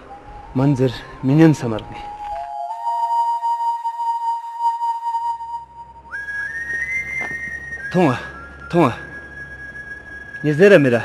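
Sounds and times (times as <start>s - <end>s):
high flute-like melody: 0.0s - 11.0s.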